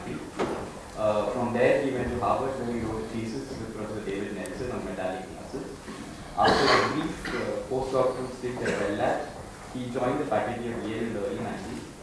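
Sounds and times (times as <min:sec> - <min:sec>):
man speaking: 0:01.0 - 0:11.9.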